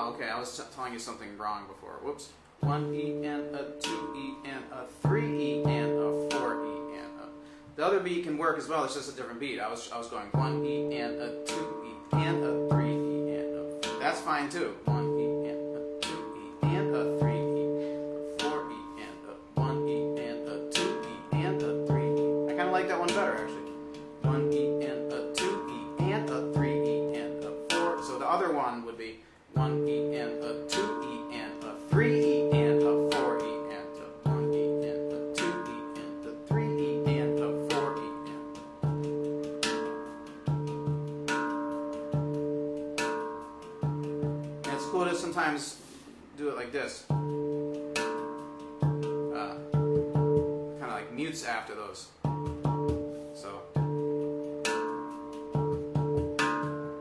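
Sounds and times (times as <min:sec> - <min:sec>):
handpan ringing low notes: 0:02.6 - 0:07.8, 0:10.3 - 0:28.7, 0:29.5 - 0:46.4, 0:47.0 - 0:57.0
light finger taps on handpan: 0:10.4 - 0:14.3, 0:47.1 - 0:50.9, 0:52.3 - 0:57.0.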